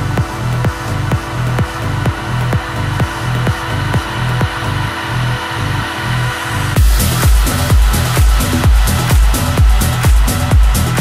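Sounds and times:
progressive house music: 0.0 - 11.0.

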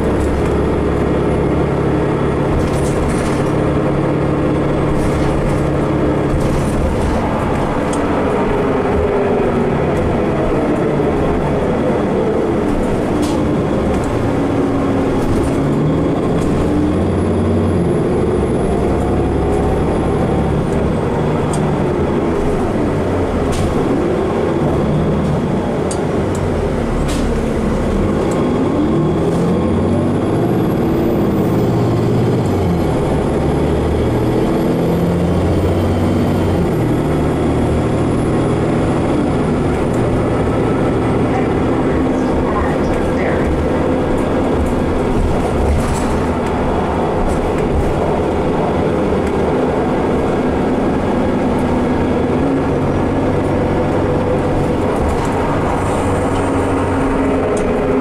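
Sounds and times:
bus engine and drivetrain: 0.0 - 58.0
road noise: 0.0 - 58.0.

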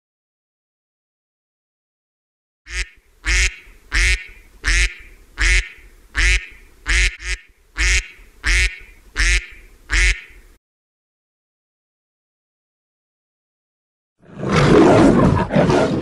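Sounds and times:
duck quacking: 2.7 - 10.6.

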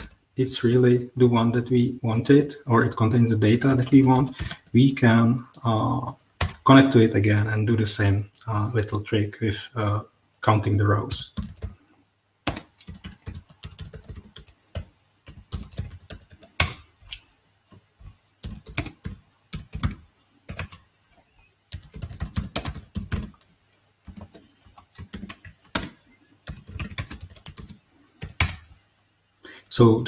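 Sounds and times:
typing on computer keyboard: 3.8 - 4.8, 6.4 - 6.6, 11.4 - 11.8, 12.5 - 16.8, 18.4 - 20.8, 21.7 - 28.7.

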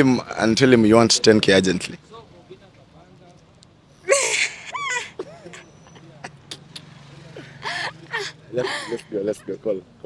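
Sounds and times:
woman laughing shrilly: 4.1 - 6.7, 7.5 - 9.0.

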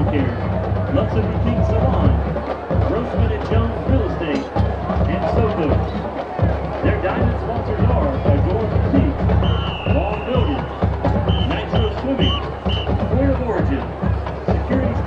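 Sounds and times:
marching band drums: 0.0 - 15.0
stadium crowd chatter: 0.0 - 15.0.

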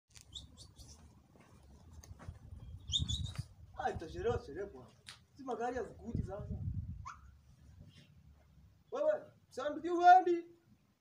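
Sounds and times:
short high bird chirps: 0.2 - 1.0, 2.6 - 3.5.

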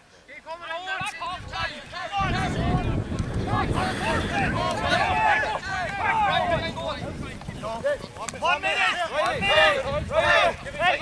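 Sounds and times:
players shouting: 0.4 - 11.0
wind buffeting microphone: 1.2 - 11.0.

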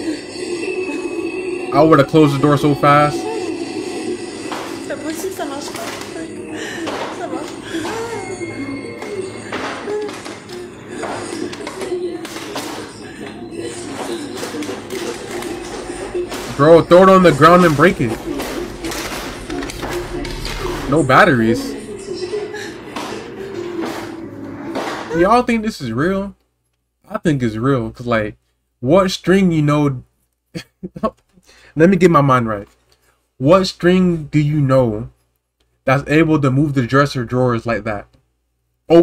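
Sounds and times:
faint background music: 0.0 - 26.4.

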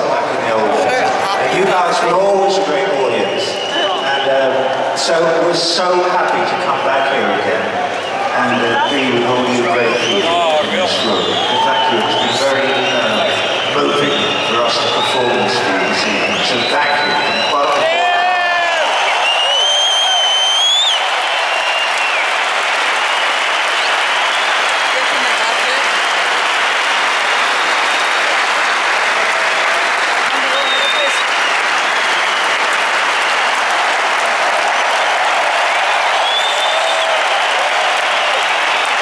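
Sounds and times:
audience applauding and cheering: 0.0 - 39.0
whistles and whoops: 3.2 - 4.6, 9.9 - 26.5, 29.6 - 33.6, 34.5 - 39.0
high rising whistle: 19.0 - 22.2.

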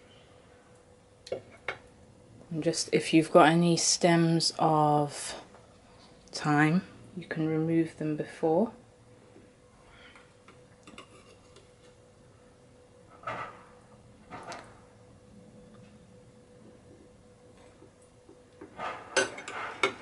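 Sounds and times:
faint steady hum: 0.0 - 20.0.

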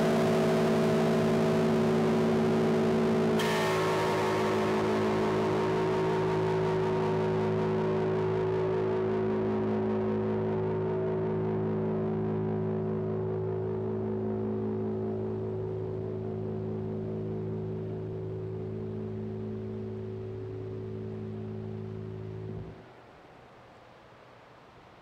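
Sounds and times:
distorted bass chords: 0.0 - 22.8.

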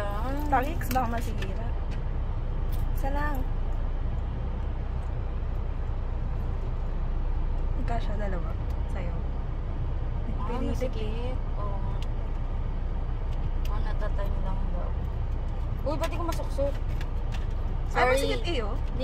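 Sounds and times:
car engine rumble inside cabin: 0.0 - 19.0.

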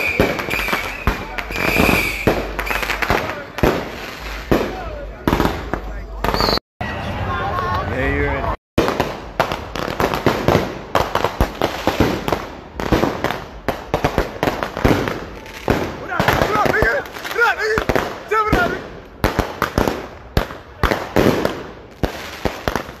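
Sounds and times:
firecrackers banging: 0.0 - 6.6, 8.8 - 23.0.

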